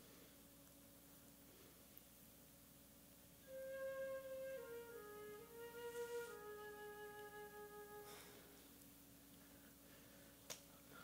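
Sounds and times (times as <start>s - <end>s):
orchestra playing soft melody: 3.5s - 8.4s.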